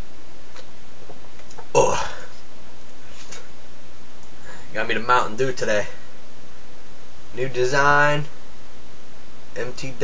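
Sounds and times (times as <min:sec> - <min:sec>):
man burping: 0:01.7 - 0:02.3.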